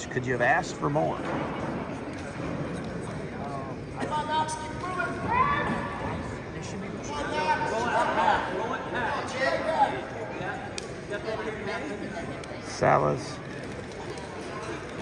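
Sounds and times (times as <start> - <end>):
background chatter: 0.0 - 15.0.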